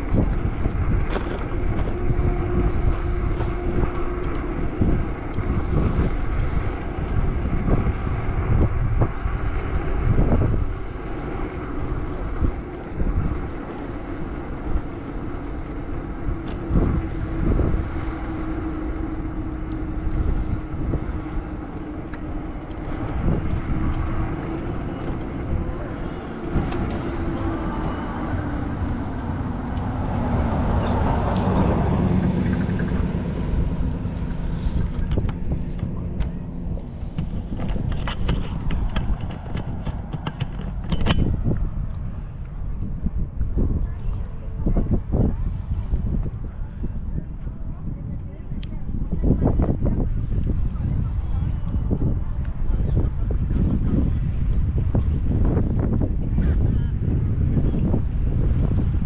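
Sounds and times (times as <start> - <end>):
vehicle passing: 0.0 - 47.9
steady engine hum: 0.0 - 59.0
wind buffeting microphone: 0.0 - 59.0.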